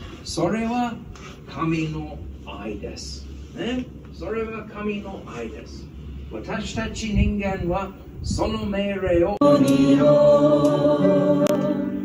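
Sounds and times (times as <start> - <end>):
congregation singing a hymn: 9.4 - 12.0.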